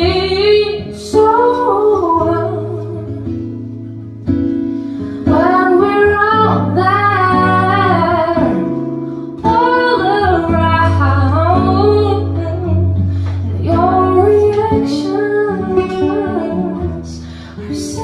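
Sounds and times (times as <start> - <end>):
person singing into a microphone: 0.0 - 3.3, 9.4 - 18.0
fingerpicked acoustic guitar: 0.0 - 18.0.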